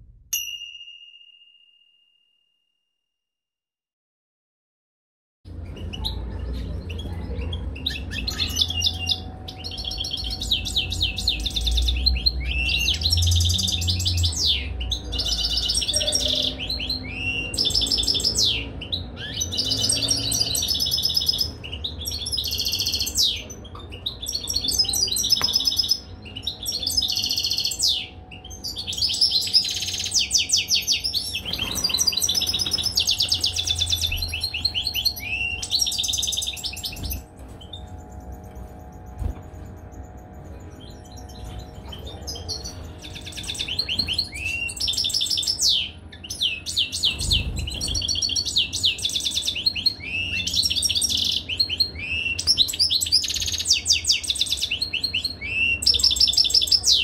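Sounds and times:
goldfinch twittering and trills: 5.8 - 57.0.

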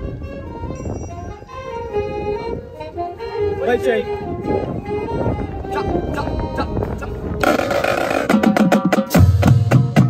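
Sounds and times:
snare and drum strokes: 7.4 - 10.0.

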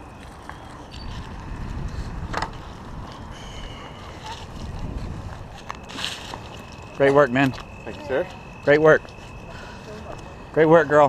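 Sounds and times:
low rumbling wind: 0.0 - 10.6.

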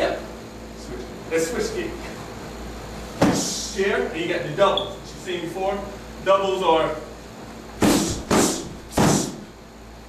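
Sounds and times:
kicks smacking kick pad: 3.2 - 3.6, 7.8 - 9.4.

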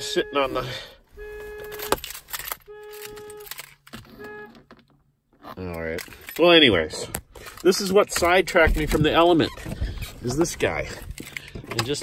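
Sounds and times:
vehicle warning beep: 0.0 - 2.0, 2.6 - 3.5.

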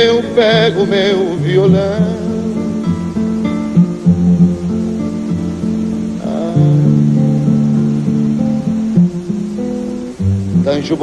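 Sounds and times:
acoustic guitar picking: 0.0 - 11.0
bass notes: 0.0 - 11.0.

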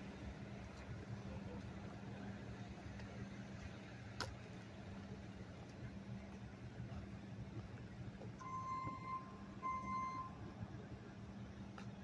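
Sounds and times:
low engine hum: 0.0 - 12.0
reversing alarm beeps: 8.4 - 10.5.

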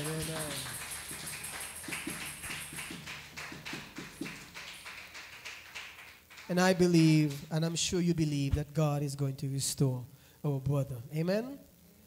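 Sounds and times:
congregation hand clapping: 0.0 - 7.6.

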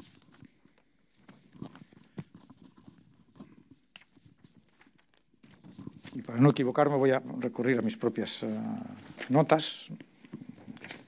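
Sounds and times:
paper notes rustling and knocking: 9.0 - 11.0.

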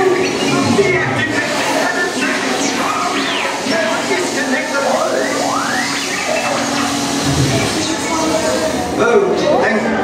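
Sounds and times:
hissing steam vent: 0.0 - 9.0
electronic whistles sweeping: 2.6 - 8.6.

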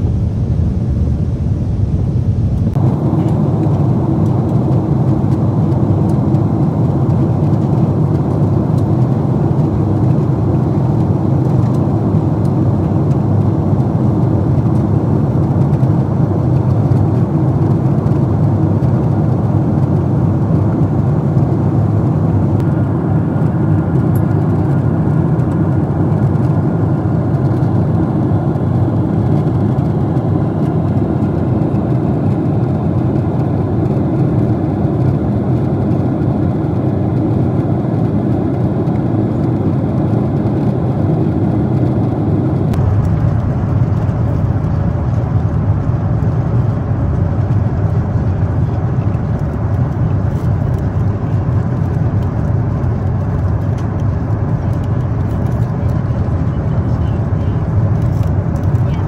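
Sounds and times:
airplane cabin noise: 0.0 - 59.0.

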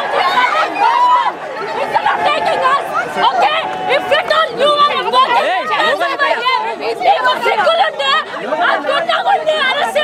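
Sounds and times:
people shouting and talking: 0.0 - 10.0.

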